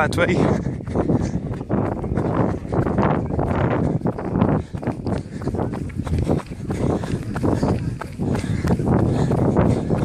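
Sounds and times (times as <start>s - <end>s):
jogging footfalls: 0.0s - 10.0s
wind rumbling on microphone: 0.0s - 10.0s.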